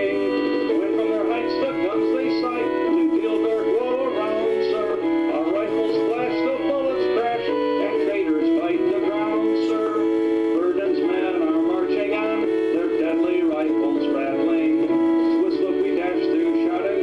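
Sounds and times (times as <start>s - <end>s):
instrumental accompaniment: 0.0s - 17.0s
man singing: 0.0s - 17.0s.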